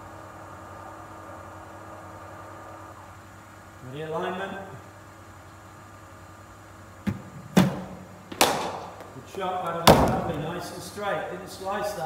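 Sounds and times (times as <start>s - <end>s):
ball thudding on turf: 7.0s - 9.1s
bowling machine firing knock: 9.8s - 10.5s.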